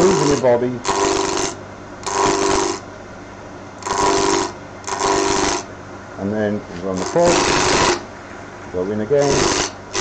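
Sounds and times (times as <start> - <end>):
gouge cutting wood: 0.0 - 2.8, 3.8 - 5.6, 7.0 - 8.0, 9.2 - 10.0
wood lathe running: 0.0 - 2.8, 3.8 - 5.6, 7.0 - 8.0, 9.2 - 10.0.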